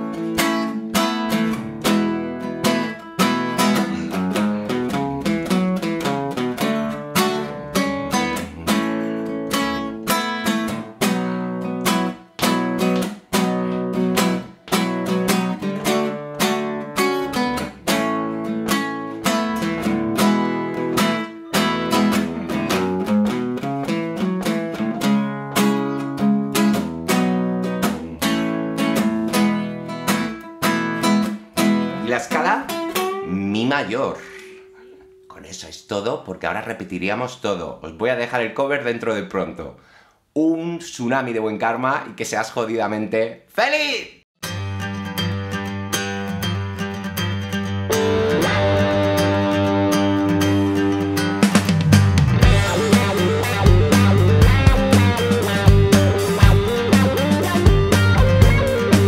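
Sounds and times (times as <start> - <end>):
nylon-string acoustic guitar strumming: 0.0 - 35.4, 44.4 - 59.0.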